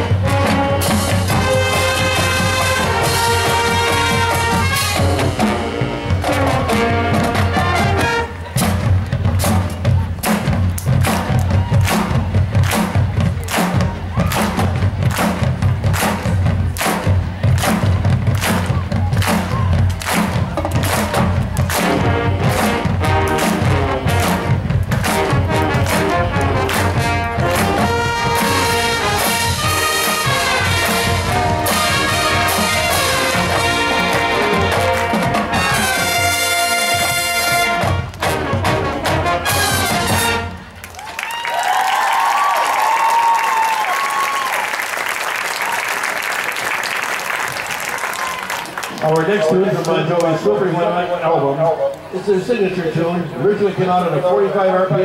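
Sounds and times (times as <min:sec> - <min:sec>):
brass chords: 0:00.0 - 0:10.2, 0:20.0 - 0:40.8.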